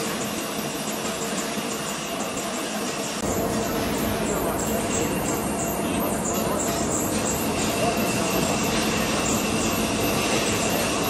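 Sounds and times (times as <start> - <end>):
lathe rattling: 0.0 - 11.0.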